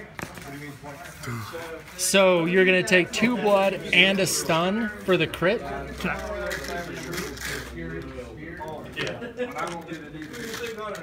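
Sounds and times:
indistinct talking: 1.0s - 11.0s.

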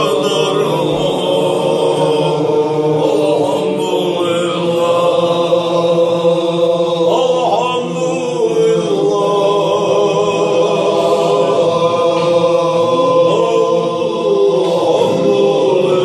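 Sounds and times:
men chanting in unison: 0.0s - 16.0s.

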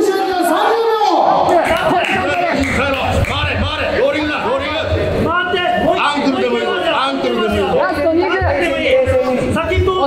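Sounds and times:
people shouting and talking: 0.0s - 10.0s.

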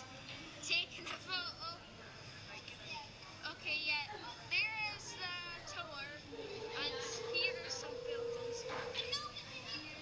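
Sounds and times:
steady humming tone: 6.2s - 9.4s
high-pitched voices calling out: 6.3s - 9.4s.

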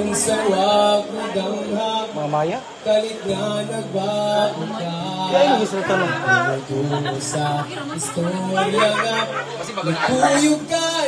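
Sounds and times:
chatter: 0.0s - 11.0s
live music through speaker: 0.0s - 11.0s.

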